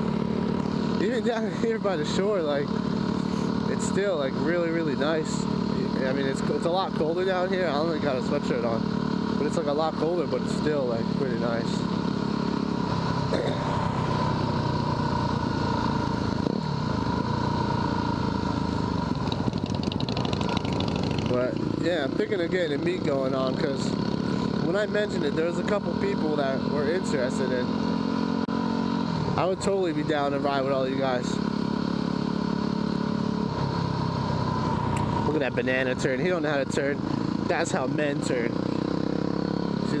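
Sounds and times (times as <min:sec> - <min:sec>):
motorcycle engine cruising: 0:00.0 - 0:40.0.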